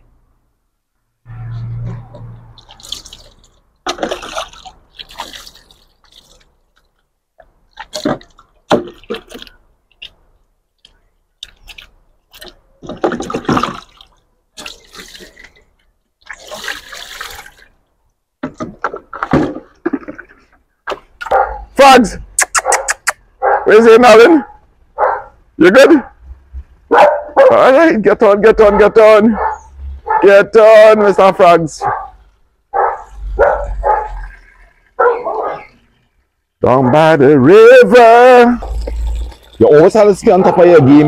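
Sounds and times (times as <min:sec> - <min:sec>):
water splashing in a sink: 0:02.2 - 0:21.3, 0:38.0 - 0:40.4.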